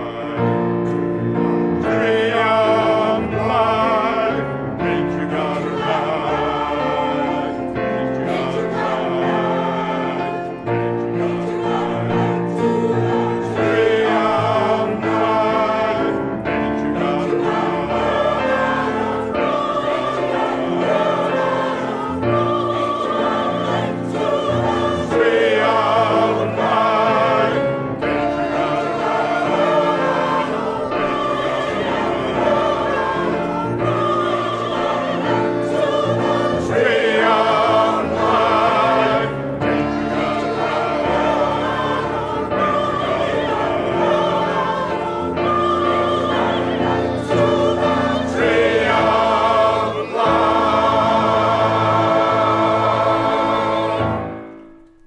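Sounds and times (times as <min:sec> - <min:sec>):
mixed choir singing in harmony: 0:00.0 - 0:55.0
piano accompaniment: 0:00.0 - 0:55.0.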